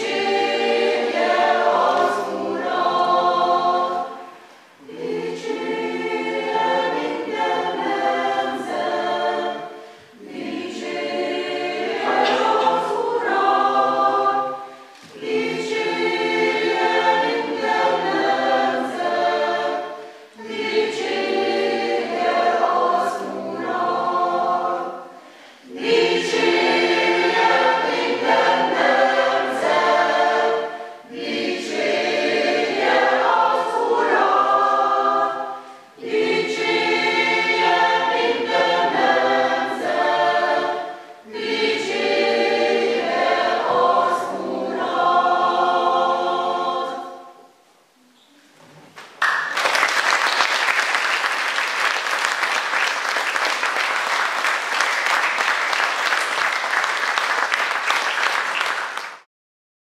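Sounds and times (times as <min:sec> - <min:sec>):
choir singing unaccompanied: 0:00.0 - 0:47.7.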